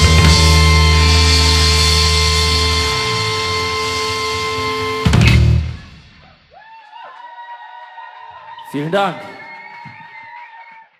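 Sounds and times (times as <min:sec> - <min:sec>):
rock band chord ringing: 0:00.0 - 0:06.2
full-band hit: 0:00.0 - 0:06.6.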